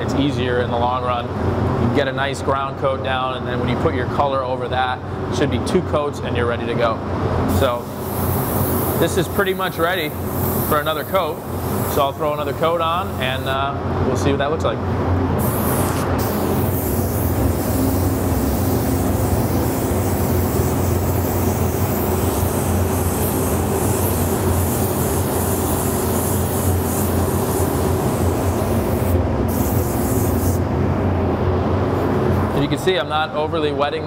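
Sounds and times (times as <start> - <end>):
steady low hum: 0.0 - 34.0
spray gun hissing: 7.5 - 13.5, 15.4 - 30.7.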